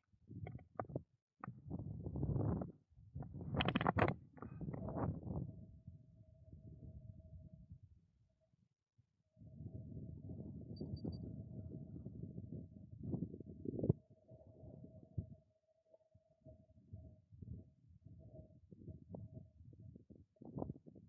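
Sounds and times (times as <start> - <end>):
wind buffeting microphone: 0.3 - 5.8, 9.4 - 14.0
faint steady tone: 9.3 - 20.1.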